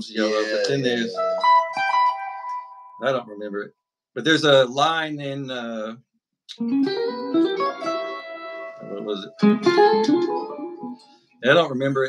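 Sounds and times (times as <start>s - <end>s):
electric guitar notes: 0.1s - 3.2s, 6.5s - 11.2s.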